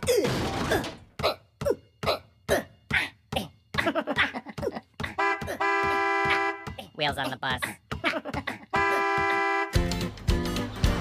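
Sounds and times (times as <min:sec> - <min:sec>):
bus horn honk: 0:05.2 - 0:06.8, 0:08.7 - 0:10.0.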